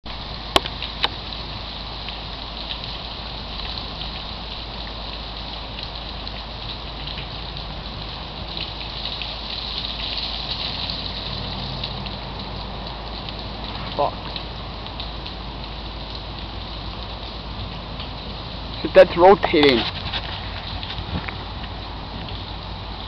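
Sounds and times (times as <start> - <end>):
steady rain falling: 0.0 - 23.0.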